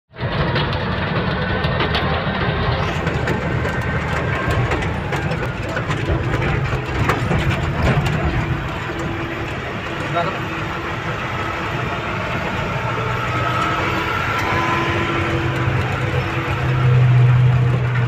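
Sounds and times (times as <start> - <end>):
diesel truck engine running: 0.1 - 18.0
cab rattles and knocks: 0.2 - 11.6.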